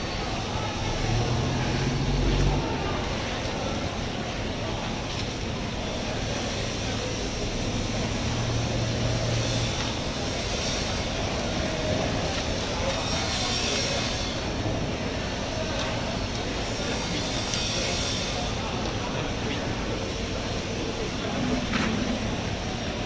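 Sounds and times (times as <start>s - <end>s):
rumbling background noise: 0.0s - 23.0s.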